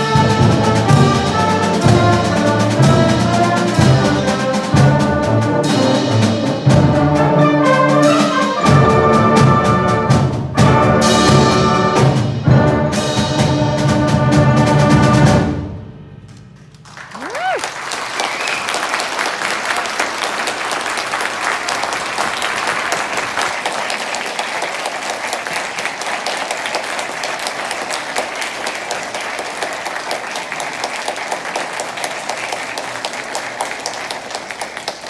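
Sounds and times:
audience applause: 16.7s - 35.0s
rising whoop: 17.1s - 18.6s.

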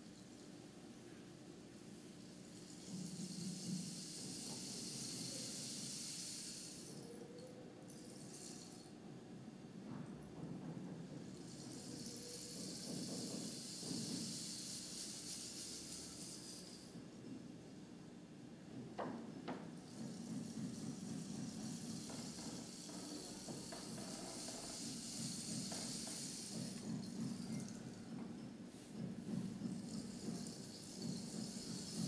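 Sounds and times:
rain stick hissing: 2.5s - 7.1s, 11.4s - 16.9s, 21.2s - 27.9s.

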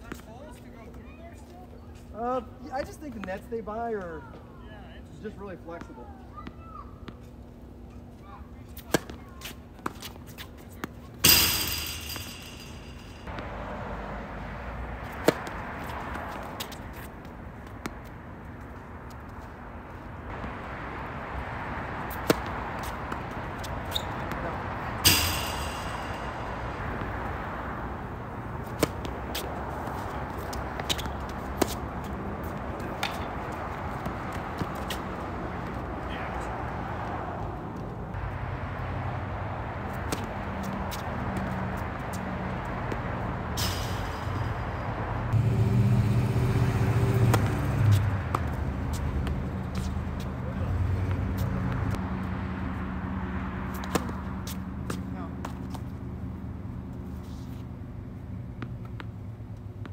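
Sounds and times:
tennis ball struck by rackets: 8.8s - 13.5s, 15.0s - 17.1s, 22.0s - 35.8s, 39.7s - 42.2s, 47.2s - 50.4s, 53.7s - 55.9s
ball bouncing on hard court: 9.8s - 13.5s, 22.1s - 27.4s, 28.6s - 35.1s, 47.2s - 50.3s
background rush of noise: 11.2s - 13.4s, 19.9s - 51.8s.

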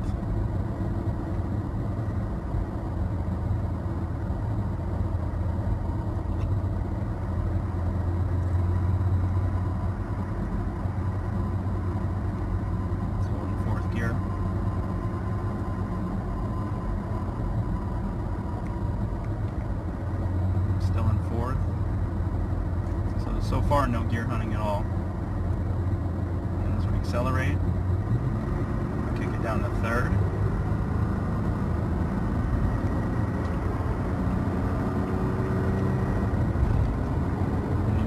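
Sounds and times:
car engine drone: 0.0s - 38.0s
road noise inside car: 0.0s - 38.0s.

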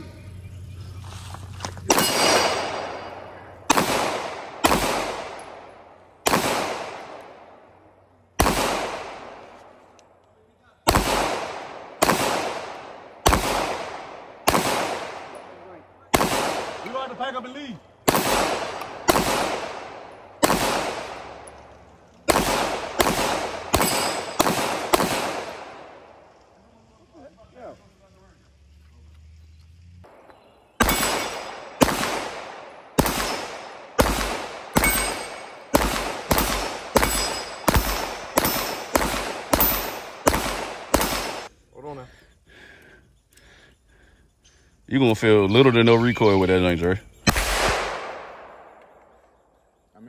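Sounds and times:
pistol shots with echo: 1.9s - 9.9s, 10.8s - 26.3s, 30.1s - 41.5s, 47.2s - 49.2s.

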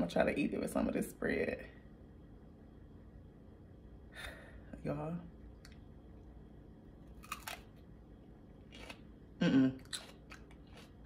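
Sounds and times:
crunch of biting pepper: 7.2s - 7.8s, 8.6s - 11.0s
faint chewing: 8.6s - 11.0s.

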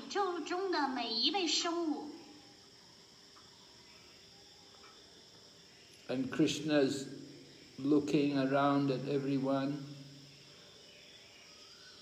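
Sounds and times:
faint high-pitched hum: 0.0s - 12.0s.

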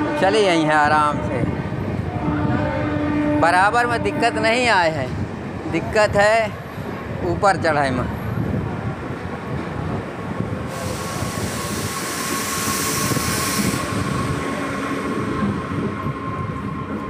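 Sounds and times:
electric train rumbling and whining: 0.0s - 17.0s
hissing burst: 10.7s - 14.3s.

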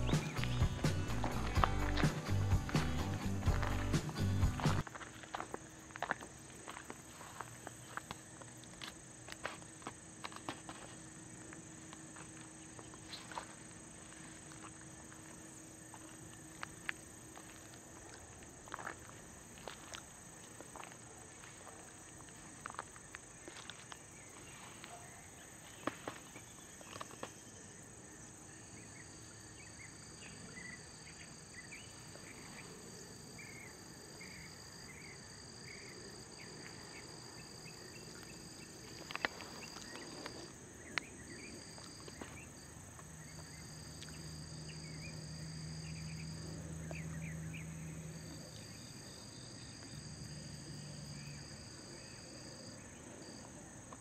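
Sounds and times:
crickets trilling: 0.0s - 54.0s
high-pitched insect drone: 43.2s - 53.4s.

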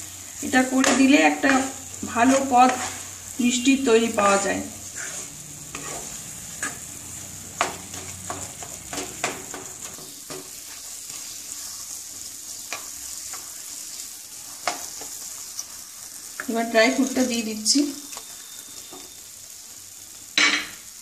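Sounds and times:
food sizzling in a pan: 0.0s - 21.0s
spatula scraping a pan: 0.6s - 19.2s.

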